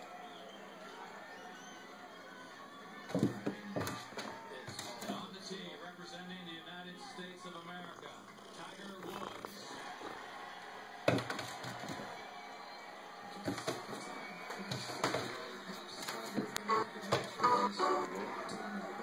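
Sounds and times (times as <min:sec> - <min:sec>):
television music and talk: 0:00.0 - 0:19.0.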